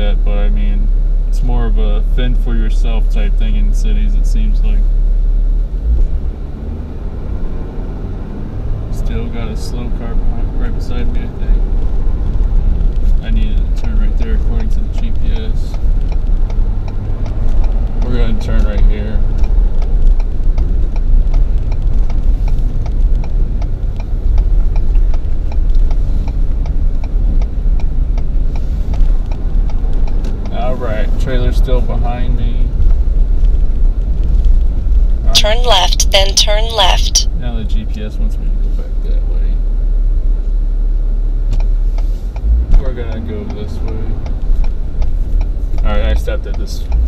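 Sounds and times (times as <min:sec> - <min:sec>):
road noise inside cab: 0:00.0 - 0:47.0.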